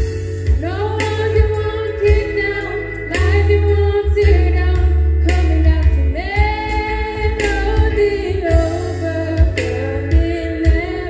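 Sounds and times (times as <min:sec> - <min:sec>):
live band bass and drums: 0:00.0 - 0:11.0
women singing into a microphone: 0:00.6 - 0:11.0.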